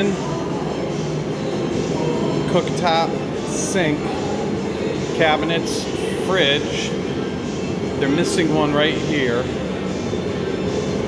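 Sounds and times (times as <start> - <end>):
steady rushing noise with hum: 0.0 - 11.0.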